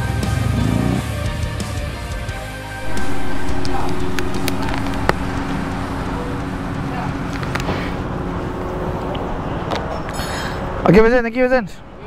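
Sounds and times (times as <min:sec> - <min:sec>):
steady low hum: 0:02.8 - 0:10.8.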